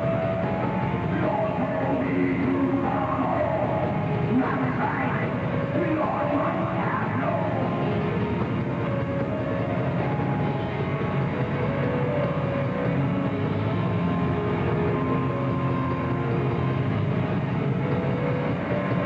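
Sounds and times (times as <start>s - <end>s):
metal band playing live: 0.3s - 19.0s.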